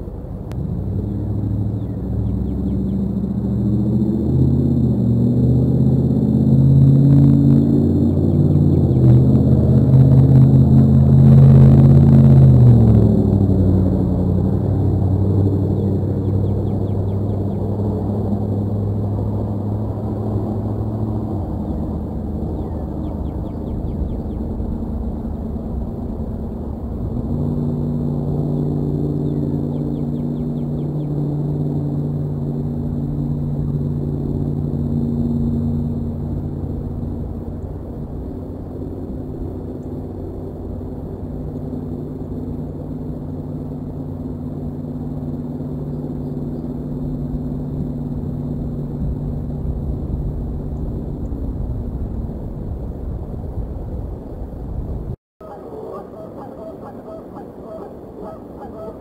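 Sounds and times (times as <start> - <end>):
low mechanical drone: 0.0 - 59.0.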